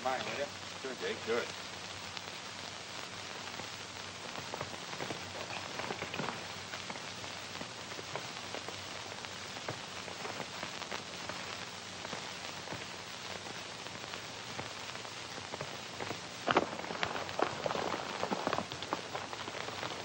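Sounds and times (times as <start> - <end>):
film soundtrack hiss and crackle: 0.0 - 20.0
faint clicks: 1.4 - 20.0.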